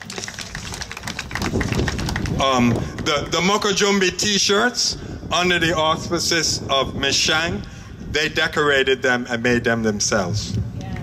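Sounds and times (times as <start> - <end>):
small audience applauding: 0.0 - 3.1.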